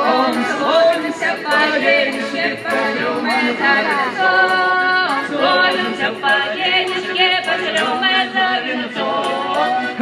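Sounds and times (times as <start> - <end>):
voices singing a folk song: 0.0 - 10.0.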